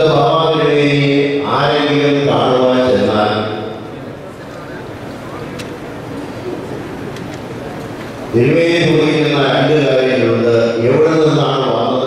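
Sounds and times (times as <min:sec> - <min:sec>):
man chanting through microphone: 0:00.0 - 0:04.2, 0:08.3 - 0:12.0.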